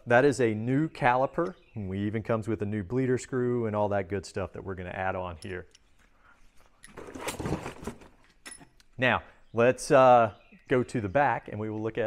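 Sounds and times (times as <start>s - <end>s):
metal parts rustling clatter: 6.6s - 8.8s.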